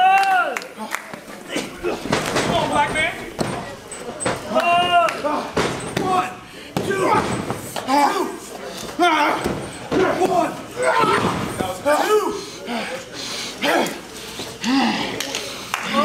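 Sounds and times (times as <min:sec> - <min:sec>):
people calling out: 0:00.0 - 0:16.0
thuds and slaps on wrestling mat: 0:02.0 - 0:04.5.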